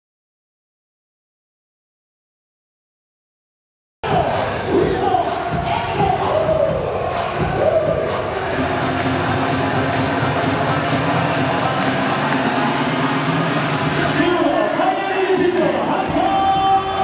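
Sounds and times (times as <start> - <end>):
cheer music over sound system: 4.0 - 17.0
crowd voices chanting: 4.0 - 17.0.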